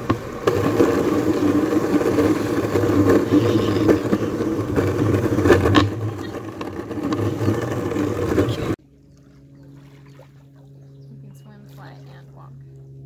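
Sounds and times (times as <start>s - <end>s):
small wheels rolling on concrete: 0.0s - 8.8s.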